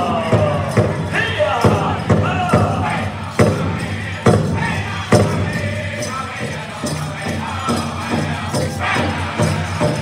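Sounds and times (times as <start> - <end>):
men singing: 0.0 - 10.0.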